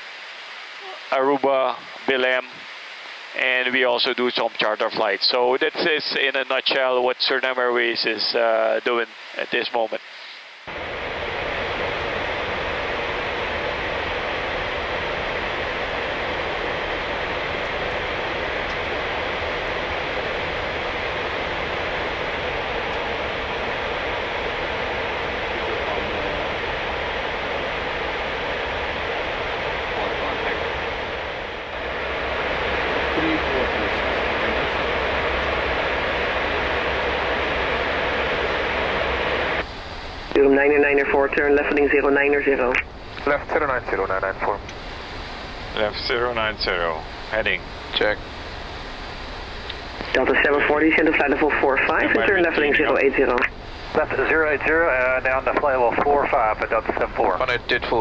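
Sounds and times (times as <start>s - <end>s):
airflow and air conditioning rushing: 10.7s - 58.0s.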